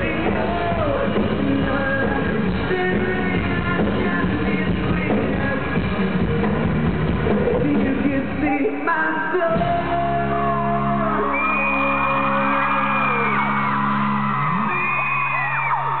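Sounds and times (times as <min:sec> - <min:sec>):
person singing into microphone: 0:00.0 - 0:06.4, 0:07.2 - 0:13.8
crowd screaming and whooping: 0:10.2 - 0:16.0.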